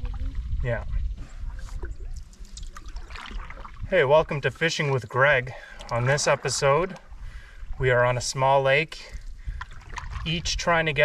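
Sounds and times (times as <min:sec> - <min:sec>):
low steady rumble: 0:00.0 - 0:11.0
paddle stroking through water: 0:01.3 - 0:08.4, 0:09.2 - 0:10.6
water trickling and dripping: 0:01.3 - 0:10.5.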